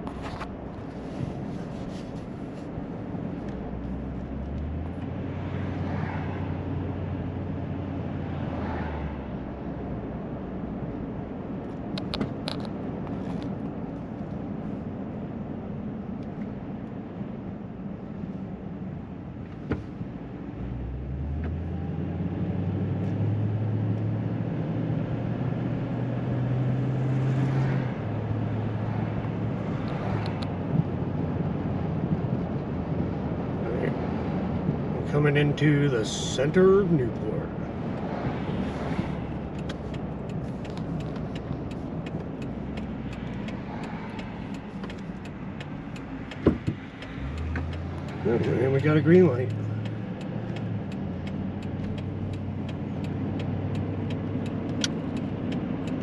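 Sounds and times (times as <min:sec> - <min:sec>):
road hum: 0:00.0 - 0:56.0
vehicle engine accelerating: 0:03.2 - 0:09.4, 0:20.5 - 0:56.0.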